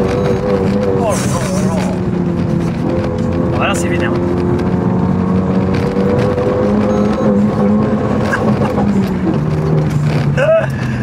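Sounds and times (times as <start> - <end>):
car engine revving: 0.0 - 11.0.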